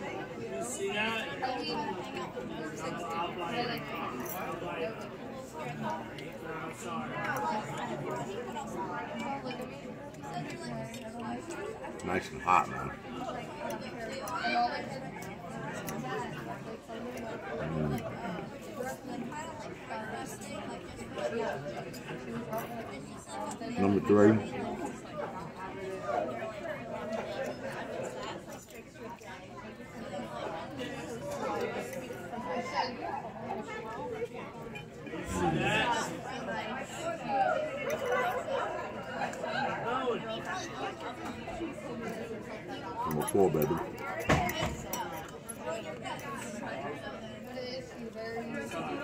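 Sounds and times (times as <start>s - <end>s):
diners chattering: 0.0s - 49.0s.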